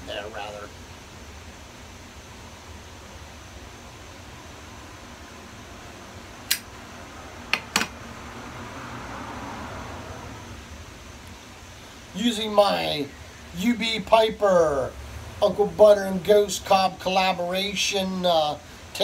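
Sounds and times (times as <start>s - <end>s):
steady low hum: 0.0s - 19.0s
sharp clicks: 6.5s - 6.7s.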